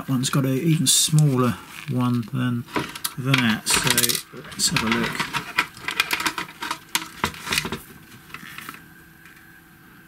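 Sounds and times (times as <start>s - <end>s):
plastic gears clicking: 2.7s - 8.8s.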